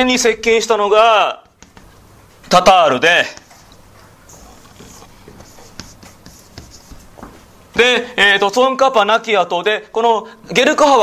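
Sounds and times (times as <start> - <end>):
faint writing on a board: 1.4 - 7.5.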